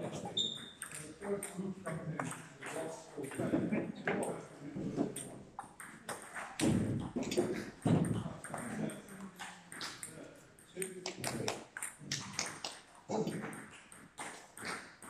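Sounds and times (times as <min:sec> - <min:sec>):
people talking: 0:00.0 - 0:05.4, 0:06.6 - 0:13.6
table tennis balls clicking: 0:00.4 - 0:03.4, 0:05.0 - 0:15.0.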